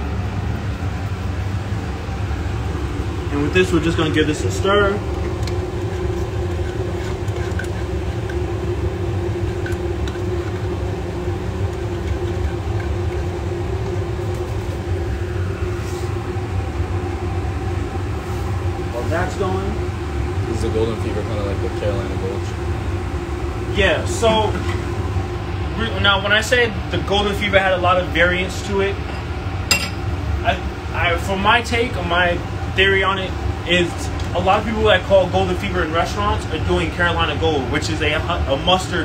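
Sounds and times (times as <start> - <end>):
ventilation fan humming: 0.0 - 39.0.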